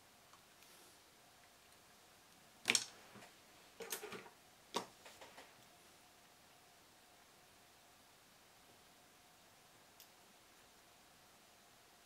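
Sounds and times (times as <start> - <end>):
small clicks and knocks: 2.7 - 5.6.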